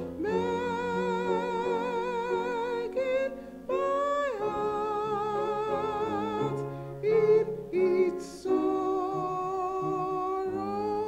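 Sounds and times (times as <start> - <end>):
woman singing a hymn: 0.0 - 11.0.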